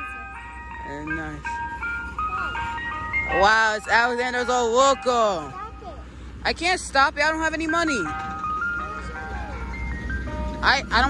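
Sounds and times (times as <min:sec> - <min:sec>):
ice cream truck chime jingle: 0:00.0 - 0:11.0.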